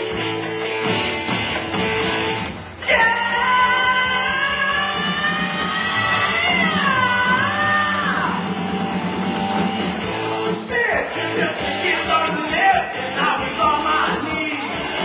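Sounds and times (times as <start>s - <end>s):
backing music: 0.0s - 15.0s
man singing into microphone: 2.8s - 8.4s, 10.8s - 14.8s.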